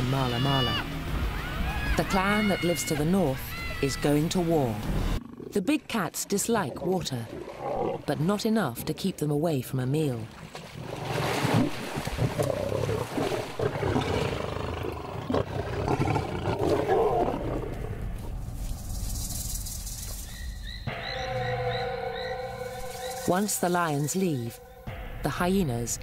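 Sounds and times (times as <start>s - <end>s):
background music with sustained tones: 0.0s - 5.2s, 20.2s - 26.0s
lions growling: 5.2s - 5.6s, 6.6s - 8.0s, 12.2s - 18.1s.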